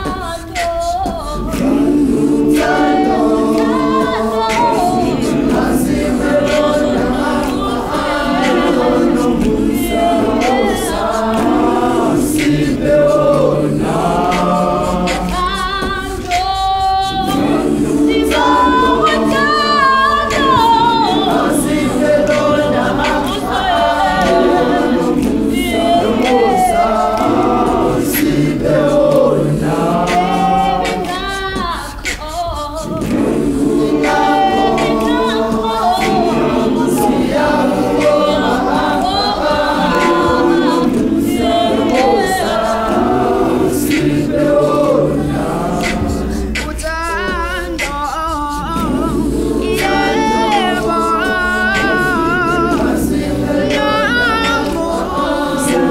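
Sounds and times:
gospel choir singing a cappella: 0.0 - 55.9
lead voice singing: 0.0 - 55.9.

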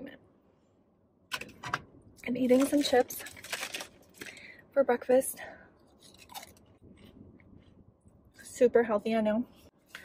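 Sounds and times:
chips crunching when chewed: 5.9 - 7.7.

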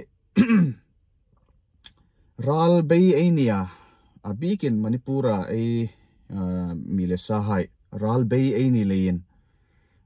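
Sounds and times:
man clearing his throat: 0.4 - 0.9.

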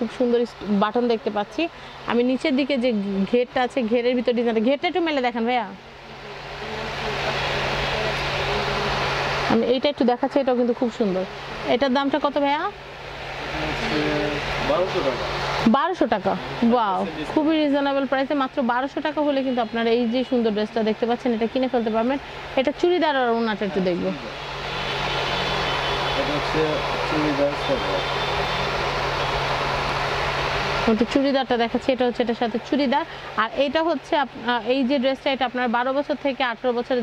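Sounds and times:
steady rushing noise: 4.7 - 19.2, 20.6 - 35.6.

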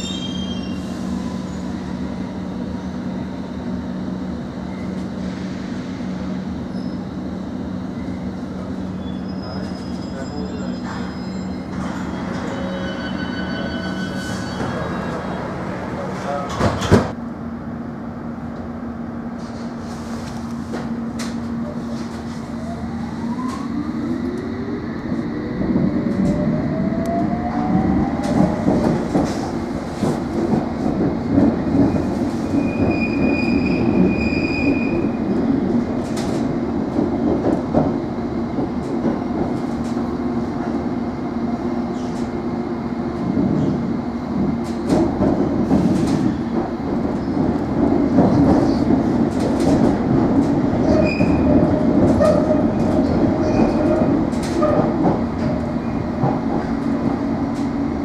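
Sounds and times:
train running rumble: 0.8 - 58.0
rail-joint clicks: 44.6 - 57.7.

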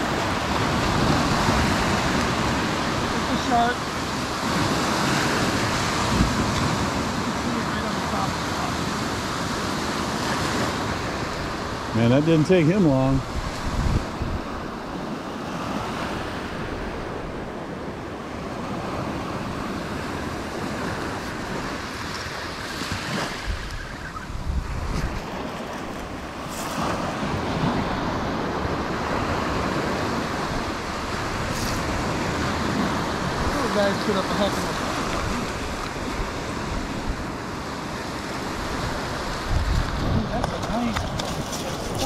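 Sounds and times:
surf washing up a shell beach: 0.0 - 42.0
wind buffeting microphone: 0.0 - 42.0.

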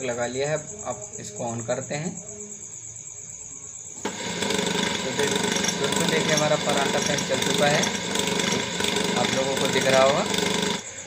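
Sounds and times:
fan motor running: 4.0 - 11.0.

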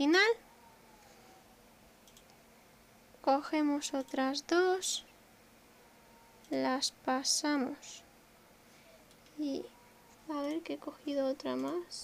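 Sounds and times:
faint clicks: 2.0 - 2.4, 9.0 - 9.4.

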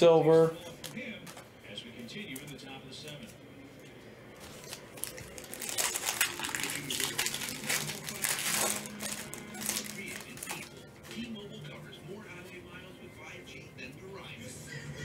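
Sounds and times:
foil wrapper tearing and crinkling: 4.4 - 11.2.

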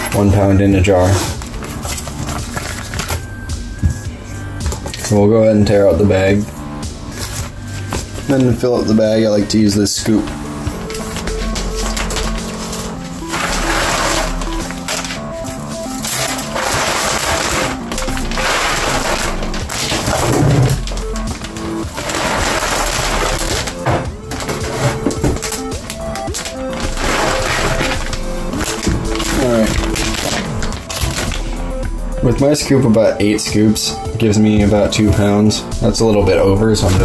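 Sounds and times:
background music: 0.0 - 37.0.

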